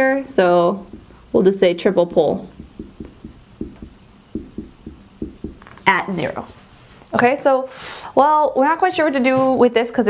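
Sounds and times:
marker writing on whiteboard: 0.9s - 1.2s, 2.5s - 5.8s.

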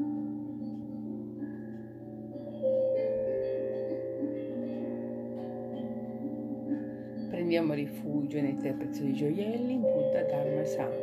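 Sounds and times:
singing bowls ringing: 0.0s - 11.0s.

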